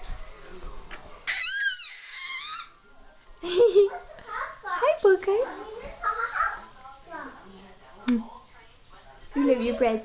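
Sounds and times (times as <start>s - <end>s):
baby squealing: 1.3s - 2.8s.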